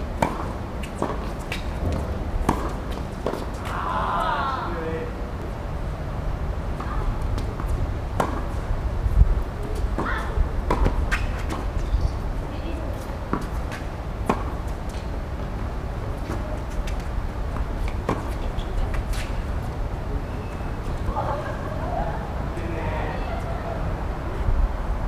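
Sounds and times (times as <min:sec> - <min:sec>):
balls bouncing on hard court: 0:00.2 - 0:03.8
tennis balls struck by rackets: 0:00.2 - 0:04.3, 0:06.8 - 0:08.7, 0:09.7 - 0:11.8, 0:13.0 - 0:15.5, 0:16.2 - 0:19.3.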